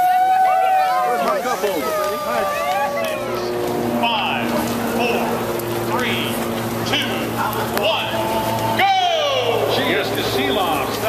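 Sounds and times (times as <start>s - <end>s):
sled dogs yelping and howling: 0.0s - 4.1s, 7.4s - 11.0s.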